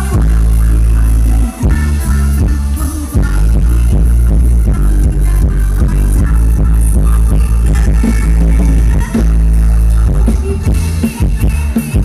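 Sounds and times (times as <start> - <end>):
dance band playing bass-heavy music: 0.0 - 12.0.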